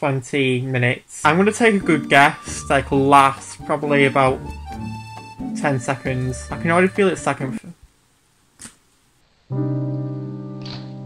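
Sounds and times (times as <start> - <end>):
held keyboard chord: 1.7 - 7.6.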